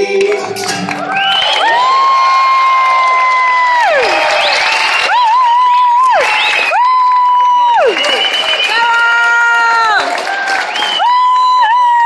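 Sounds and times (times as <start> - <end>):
audience cheering and applauding: 0.0 - 12.0
high falling whoops: 10.8 - 12.0.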